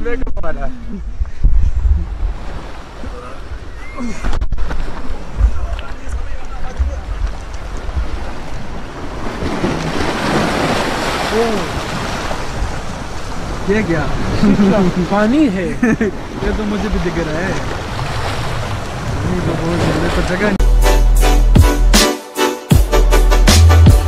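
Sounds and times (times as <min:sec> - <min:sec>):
wind rumble on microphone: 0:00.0 - 0:10.3
waves washing onto pebbles: 0:06.0 - 0:15.3.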